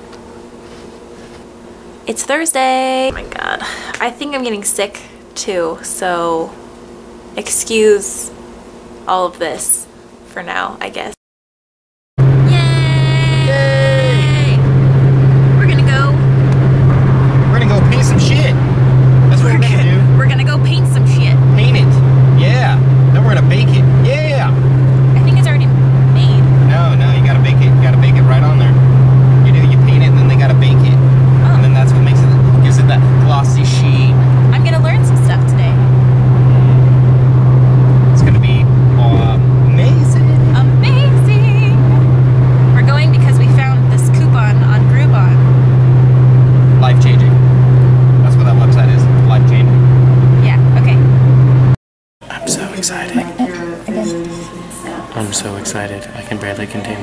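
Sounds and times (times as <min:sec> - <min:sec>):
indistinct voices: 0:02.8 - 0:04.2, 0:12.4 - 0:45.7, 0:50.4 - 0:51.2, 0:52.2 - 0:57.0
car engine drone: 0:03.0 - 0:04.0, 0:12.2 - 0:57.0
road noise inside car: 0:12.2 - 0:51.8.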